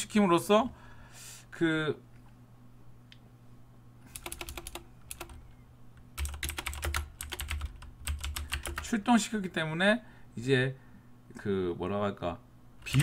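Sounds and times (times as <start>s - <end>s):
typing on computer keyboard: 4.1s - 5.4s, 6.2s - 8.9s.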